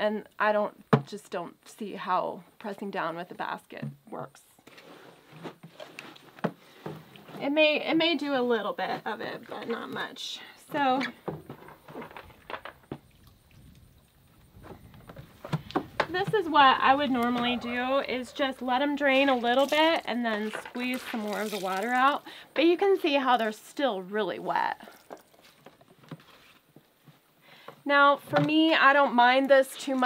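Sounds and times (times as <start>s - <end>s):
plastic bucket knocking and scraping: 4.6s - 7.6s, 11.2s - 13.1s, 14.3s - 22.2s
wet clothes squelching and dripping: 12.3s - 15.8s, 16.6s - 22.4s, 24.4s - 26.0s.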